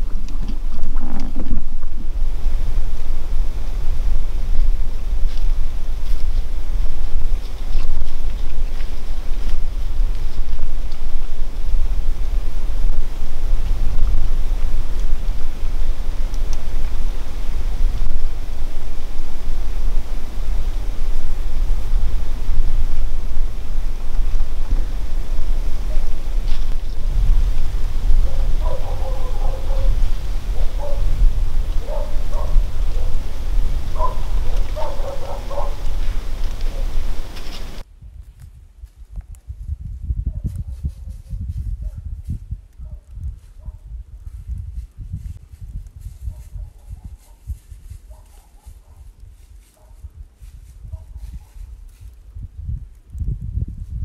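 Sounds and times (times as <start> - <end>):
wind buffeting microphone: 0.0 - 54.0
short pitched calls: 12.6 - 37.8.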